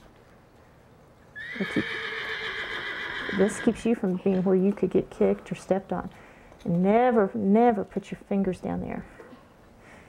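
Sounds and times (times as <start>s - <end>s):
horse whinnying: 1.4s - 3.8s.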